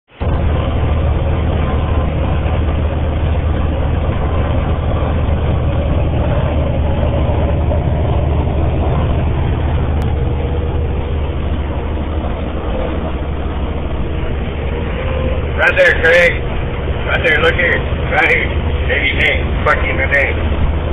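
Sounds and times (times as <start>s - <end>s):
constant low drone: 0.1s - 20.9s
vehicle road and engine noise: 0.1s - 20.9s.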